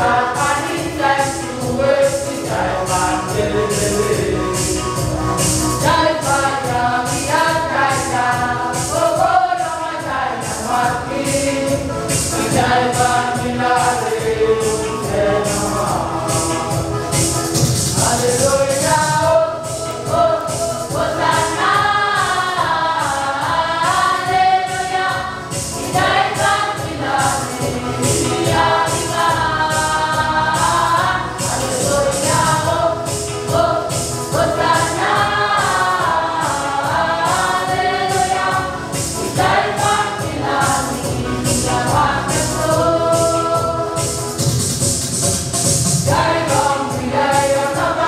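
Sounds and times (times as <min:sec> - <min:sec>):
group singing gospel: 0:00.0 - 0:48.0.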